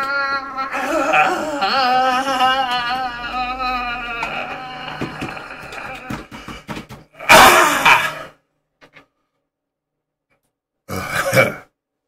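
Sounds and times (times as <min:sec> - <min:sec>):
loud rough vocal cry: 0:00.0 - 0:06.3, 0:07.2 - 0:08.4.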